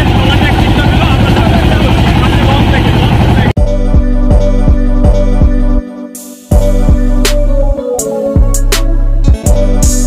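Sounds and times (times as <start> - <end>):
voices: 0.0 - 3.6
boat engine rumbling: 0.0 - 5.7
music with a steady beat: 3.6 - 10.0.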